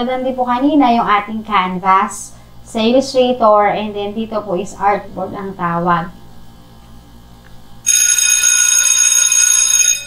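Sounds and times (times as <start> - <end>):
loud electronic ringing tone: 7.8 - 10.0.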